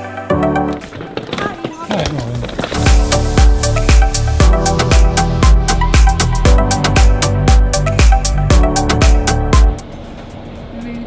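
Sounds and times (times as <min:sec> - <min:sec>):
electronic background music: 0:02.6 - 0:09.9
deep kick drum: 0:02.9 - 0:09.8.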